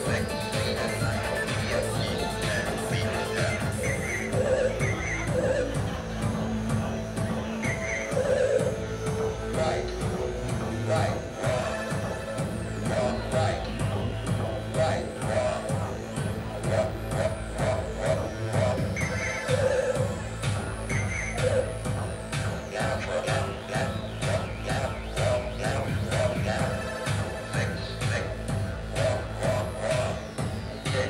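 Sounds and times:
electronic music on synthesizers: 0.0s - 31.0s.

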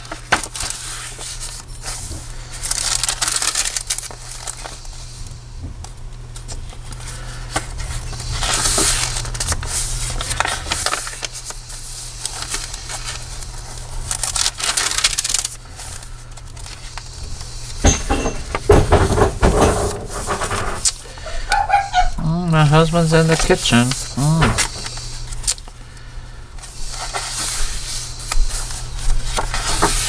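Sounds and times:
paper pages rustling and flapping: 0.0s - 4.8s, 6.4s - 17.8s, 18.7s - 21.0s, 26.6s - 30.0s.

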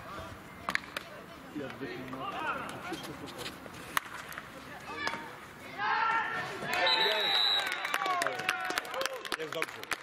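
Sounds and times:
faint shouting: 4.9s - 7.2s.

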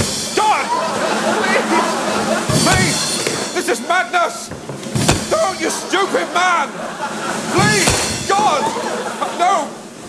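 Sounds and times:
daggers thudding into wood: 2.5s - 3.4s, 4.5s - 5.7s, 7.6s - 8.6s.

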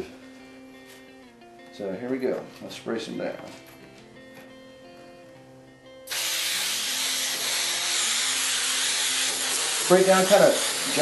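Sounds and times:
aerosol can spraying: 6.1s - 11.0s.

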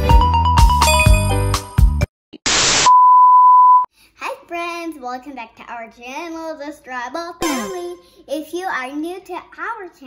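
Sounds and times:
high-pitched test tone beep: 0.9s - 1.5s.

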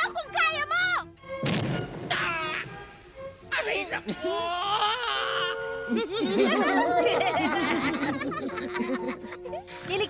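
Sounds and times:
background music: 0.0s - 10.0s
cartoon voice crying out in pain: 2.1s - 2.7s, 4.2s - 5.6s.

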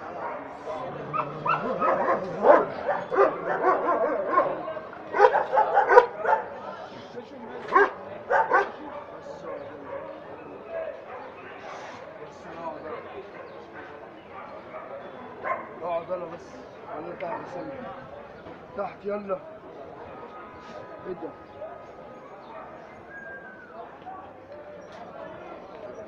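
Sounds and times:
dogs barking and yelping: 0.0s - 6.6s, 7.7s - 10.2s, 14.3s - 15.8s
background chatter of voices: 0.0s - 26.0s.

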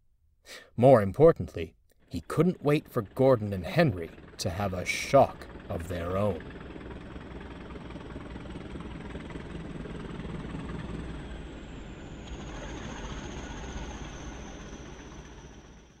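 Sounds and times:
rumbling engine with high whine: 2.0s - 16.0s.

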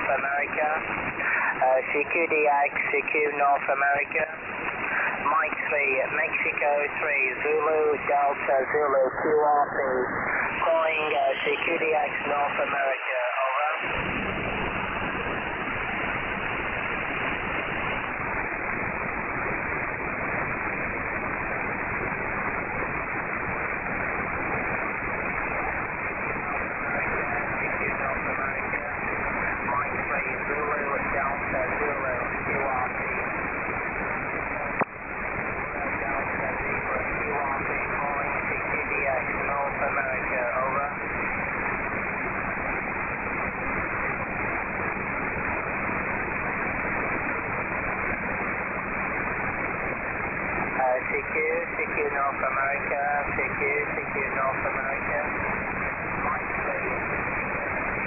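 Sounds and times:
weak voice under radio noise: 0.0s - 14.0s, 23.2s - 41.1s, 50.5s - 58.0s
radio band hiss: 0.0s - 58.0s.

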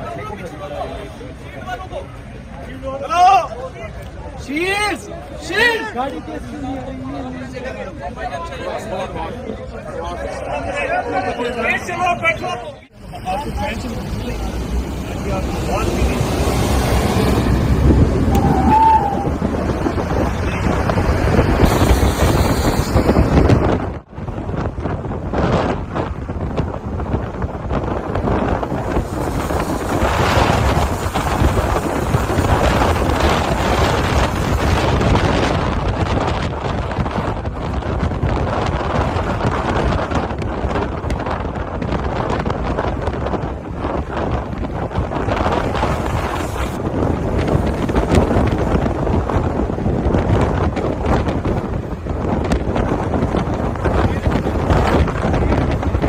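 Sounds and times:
road and traffic noise: 0.0s - 56.0s
wind buffeting microphone: 0.0s - 56.0s.

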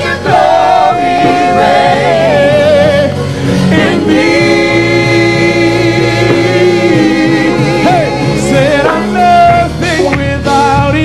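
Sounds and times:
group singing gospel: 0.0s - 11.0s
sustained backing chords: 0.0s - 11.0s.

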